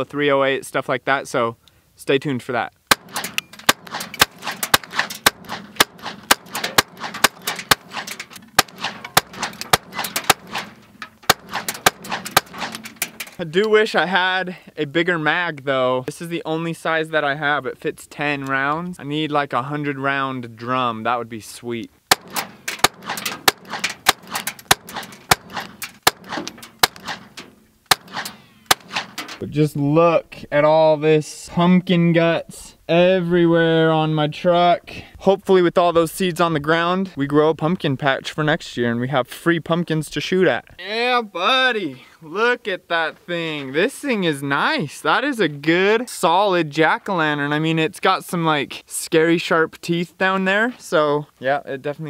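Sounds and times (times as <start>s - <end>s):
rifle shots cracking: 2.9s - 13.4s, 22.1s - 29.4s.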